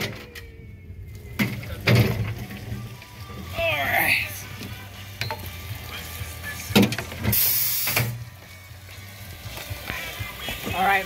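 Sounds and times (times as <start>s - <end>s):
roller coaster car clunking: 0.0s - 3.2s
burst of hissing: 7.2s - 8.2s.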